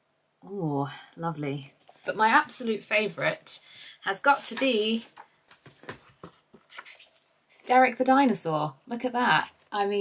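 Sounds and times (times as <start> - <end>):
book pages rustling: 4.3 - 7.3.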